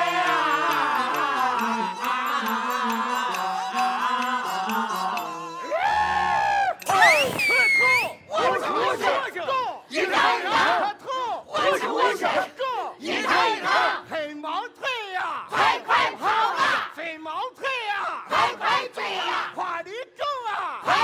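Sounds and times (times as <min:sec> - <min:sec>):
chorus shouting in rhythm: 0:00.0 - 0:07.6, 0:08.3 - 0:14.1, 0:15.5 - 0:16.9, 0:18.3 - 0:19.6, 0:20.8 - 0:21.0
high rising cry: 0:00.0 - 0:08.4.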